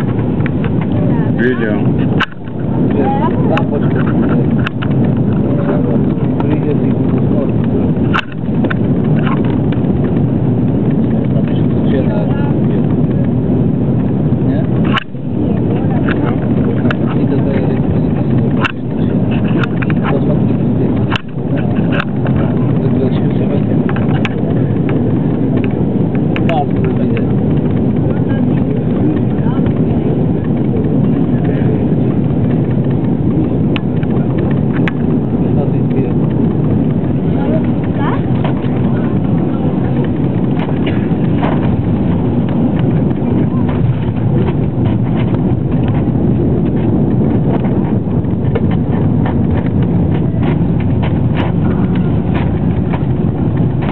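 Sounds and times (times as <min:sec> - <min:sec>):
jet airliner cabin noise: 0:00.0 - 0:53.9.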